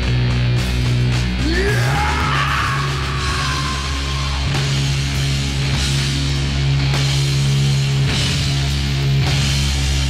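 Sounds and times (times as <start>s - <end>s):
doom metal band playing: 0.0s - 10.0s.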